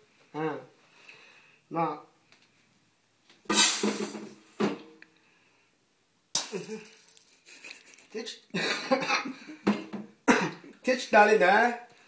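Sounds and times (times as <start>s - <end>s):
person speaking: 0.3s - 0.8s, 7.8s - 8.6s, 10.7s - 11.9s
sharp cough-like burst: 10.3s - 10.6s.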